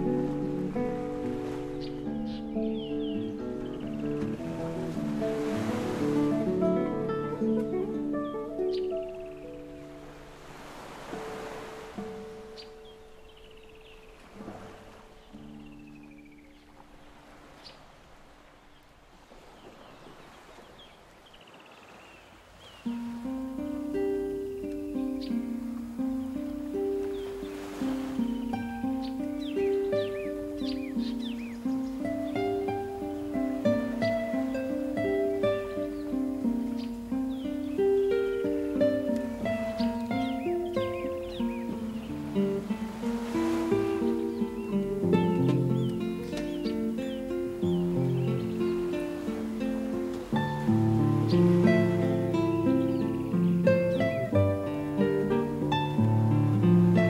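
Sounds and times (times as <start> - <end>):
classical guitar fingerpicked melody: 0.0 - 17.8, 22.7 - 57.0
ocean waves: 0.0 - 57.0
bird chirping: 1.4 - 4.5, 7.8 - 10.2, 12.5 - 14.3, 14.9 - 17.9, 24.6 - 42.8, 43.4 - 56.0.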